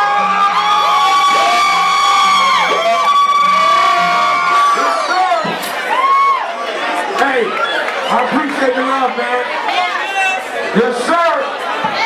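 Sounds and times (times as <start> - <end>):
crowd cheering and whooping: 0.0 - 8.7.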